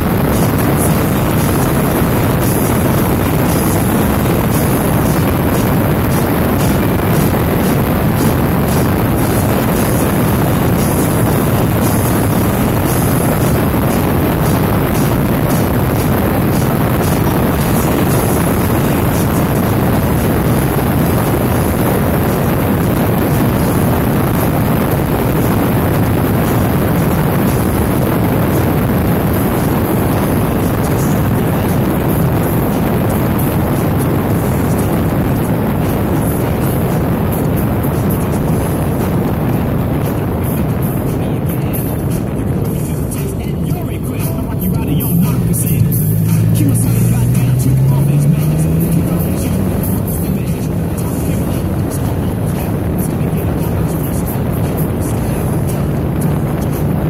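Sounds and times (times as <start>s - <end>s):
motorcycle engine running: 0.0s - 57.0s
wind rushing on microphone: 0.0s - 57.0s.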